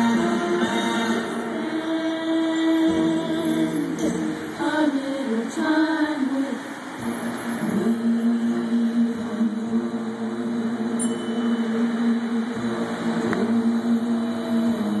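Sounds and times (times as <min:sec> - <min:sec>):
music over outdoor loudspeakers: 0:00.0 - 0:15.0.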